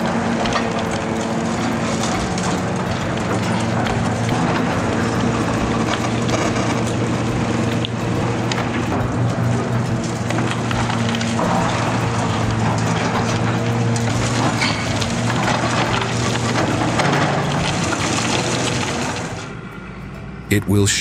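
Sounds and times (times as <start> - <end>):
masonry cracking and crunching: 0.0 - 19.5
diesel engine running: 0.0 - 21.0.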